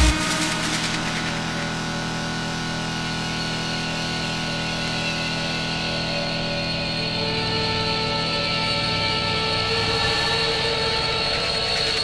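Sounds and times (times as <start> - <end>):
sustained synth drone: 0.0 - 12.0.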